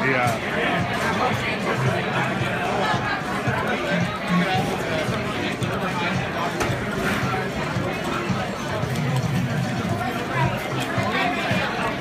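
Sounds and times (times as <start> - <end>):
hubbub of chatter: 0.0 - 12.0.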